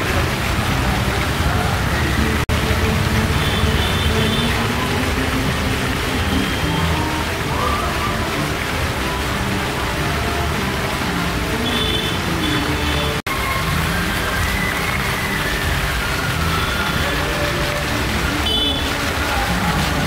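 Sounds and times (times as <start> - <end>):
music playing: 0.0 - 20.0.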